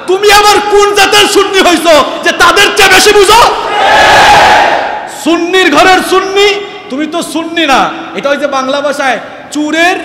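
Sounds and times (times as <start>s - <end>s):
man speaking: 0.0s - 3.6s, 5.1s - 10.0s
crowd shouting together: 3.6s - 5.1s.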